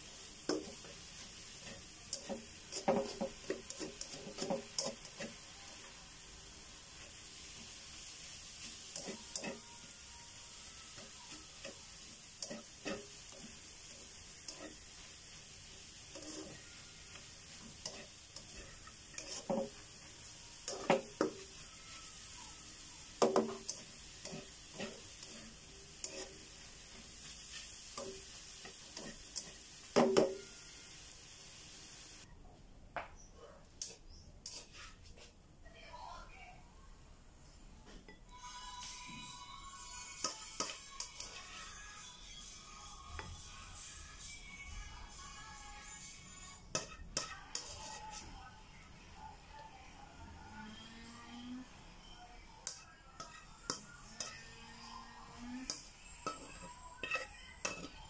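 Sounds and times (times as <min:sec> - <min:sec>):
spatula scraping pan: 0:00.0 - 0:05.5, 0:07.0 - 0:22.4, 0:23.1 - 0:30.8, 0:34.4 - 0:35.3, 0:40.2 - 0:41.9, 0:46.7 - 0:48.4, 0:52.6 - 0:58.0
food sizzling in frying pan: 0:00.0 - 0:32.3, 0:33.8 - 0:34.9, 0:38.3 - 0:49.5, 0:50.5 - 0:58.0
spatula clacking on pan: 0:01.6 - 0:05.4, 0:08.9 - 0:09.6, 0:12.4 - 0:15.0, 0:17.2 - 0:19.9, 0:20.7 - 0:21.6, 0:23.2 - 0:26.4, 0:27.9 - 0:30.4, 0:46.7 - 0:47.8, 0:55.7 - 0:58.0.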